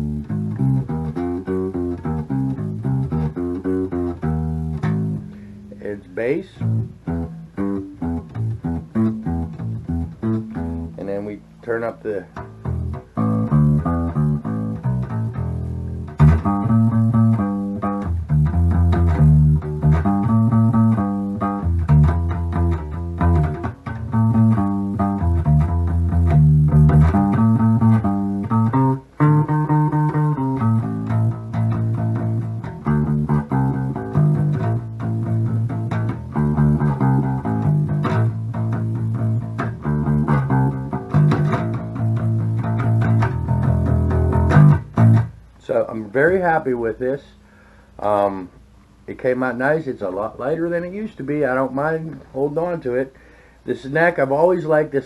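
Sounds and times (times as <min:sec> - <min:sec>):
electric bass fingerpicked: 0:00.0 - 0:55.0.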